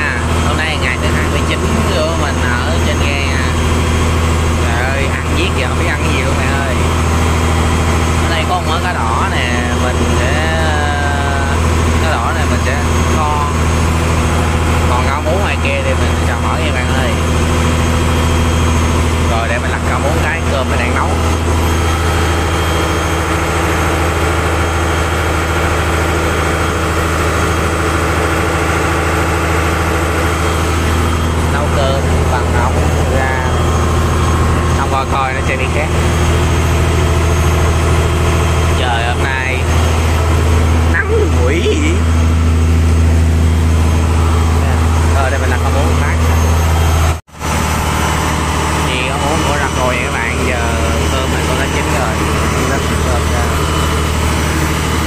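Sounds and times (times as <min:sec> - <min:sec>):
boat engine droning: 0:00.0 - 0:55.0.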